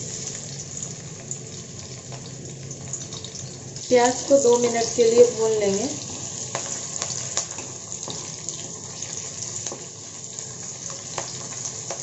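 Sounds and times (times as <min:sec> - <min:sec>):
onions sizzling in hot oil: 0:00.0 - 0:12.0.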